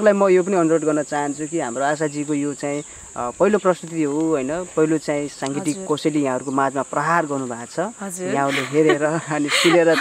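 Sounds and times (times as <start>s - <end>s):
insects droning: 0.0s - 10.0s
man speaking: 0.0s - 10.0s.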